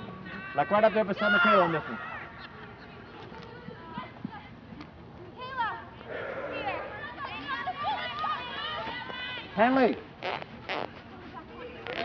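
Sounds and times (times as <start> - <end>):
distant shouts: 5.5 - 9.6
faint talk: 6.0 - 9.0.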